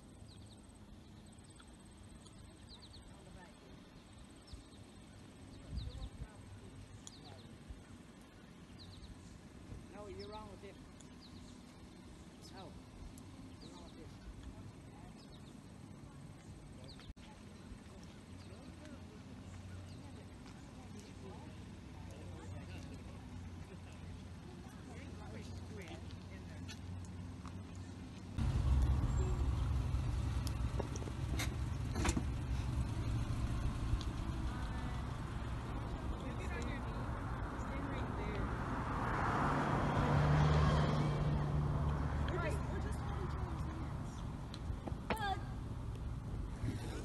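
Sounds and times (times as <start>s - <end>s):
distant voices: 0.0s - 47.0s
road traffic engine rumble: 0.0s - 47.0s
vehicle passing: 21.1s - 47.0s
low rumble: 28.3s - 40.2s.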